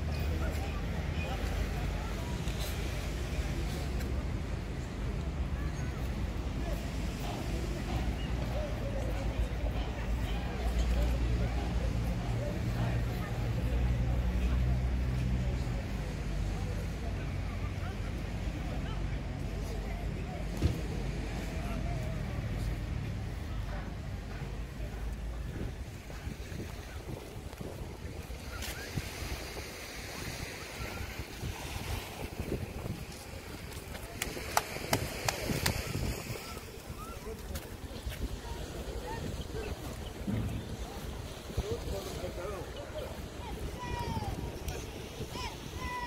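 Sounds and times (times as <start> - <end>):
distant voices: 0.2 - 46.0
wind rumbling on microphone: 19.4 - 46.0.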